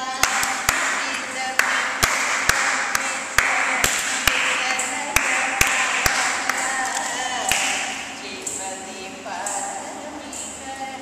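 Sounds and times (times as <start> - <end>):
sharp time-keeping claps: 0.1 - 8.6.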